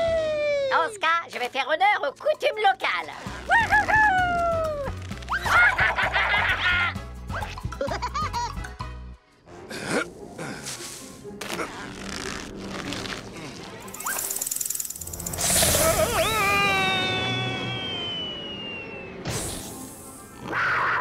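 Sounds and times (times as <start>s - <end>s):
background music: 0.0s - 21.0s
cartoon sound effects: 15.4s - 17.8s
cartoon falling scream: 15.6s - 18.8s, 20.4s - 21.0s.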